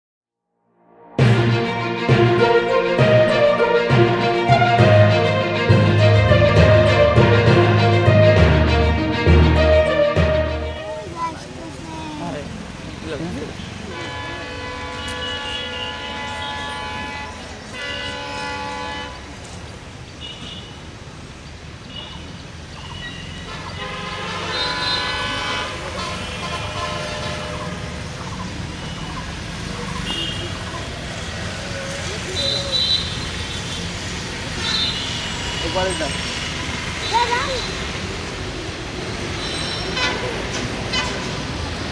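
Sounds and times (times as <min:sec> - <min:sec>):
train horn blasts: 0:13.9 - 0:19.3, 0:23.5 - 0:27.8, 0:39.8 - 0:41.4
train rumble: 0:39.9 - 0:41.9.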